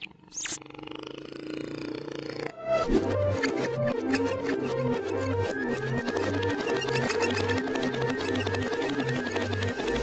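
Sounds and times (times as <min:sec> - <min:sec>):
lively cartoon music: 0:02.6 - 0:10.0.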